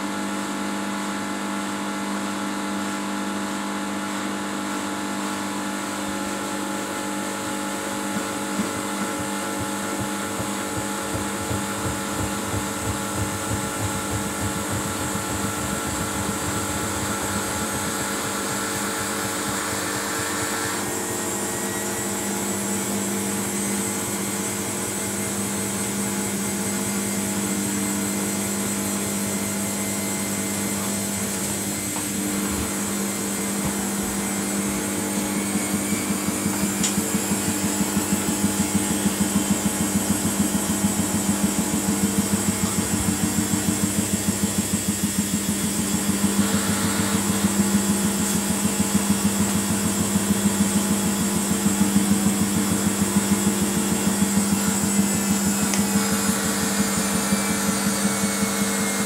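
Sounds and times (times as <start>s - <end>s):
washing machine drum spinning: 7.3s - 58.6s
fast even pulsing: 8.0s - 20.7s.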